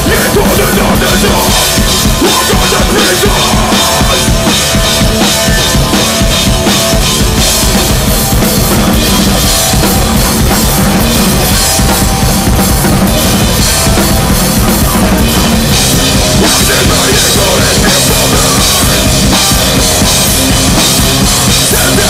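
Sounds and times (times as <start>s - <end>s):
live band playing loud: 0.0s - 22.0s.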